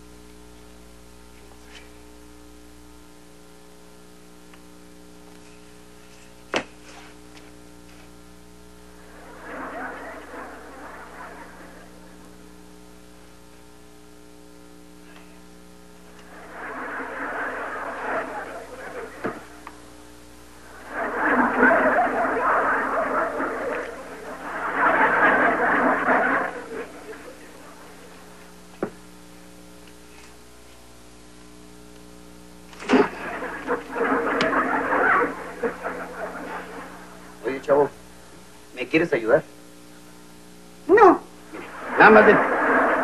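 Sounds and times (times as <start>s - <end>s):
steady electrical hum: 0.0s - 43.0s
audience laughter: 8.9s - 12.5s, 16.1s - 28.7s, 32.7s - 38.6s, 41.5s - 43.0s.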